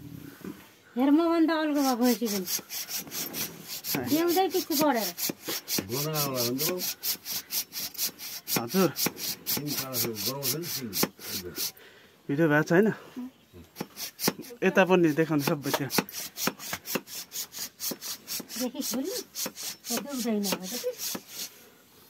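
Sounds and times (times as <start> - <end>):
hacksaw cutting horn: 1.8 - 11.8, 15.4 - 21.5.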